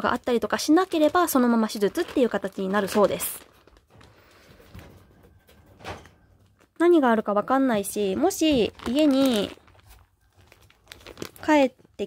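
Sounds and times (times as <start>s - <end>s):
plastic bag crinkling: 0.0s - 4.9s, 6.2s - 12.0s.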